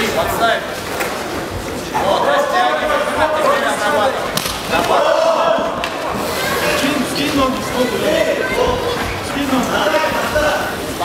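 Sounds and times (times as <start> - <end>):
people shouting excitedly: 4.7 - 6.9.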